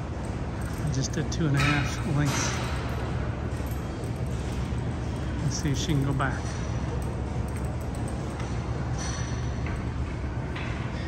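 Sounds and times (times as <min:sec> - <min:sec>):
low room hum: 0:00.0 - 0:11.0
faint ticks and clinks: 0:00.2 - 0:09.8.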